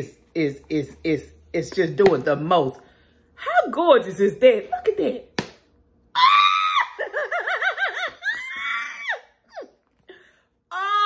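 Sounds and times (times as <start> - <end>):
woman squealing: 6.1 - 9.8, 10.7 - 11.0.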